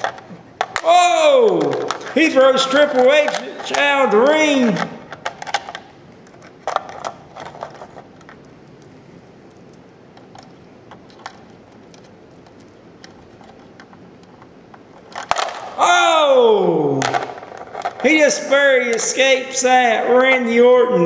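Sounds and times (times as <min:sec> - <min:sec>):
plastic toy figures clicking: 0:00.0 - 0:05.9.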